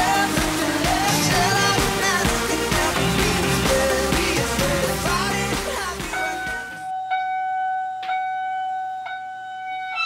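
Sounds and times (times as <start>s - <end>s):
pop music: 0.0s - 6.9s
electronic chime-like tone: 6.1s - 10.0s.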